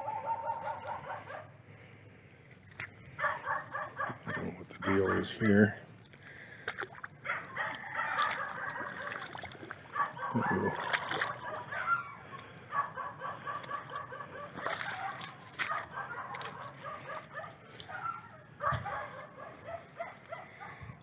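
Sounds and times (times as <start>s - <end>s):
rooster crowing: 7.4s - 9.1s.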